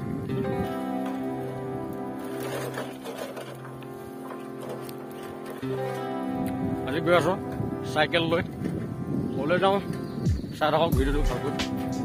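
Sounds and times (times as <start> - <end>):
background music with held notes: 0.0 - 12.0
bicycle rattling on dirt track: 2.1 - 6.3.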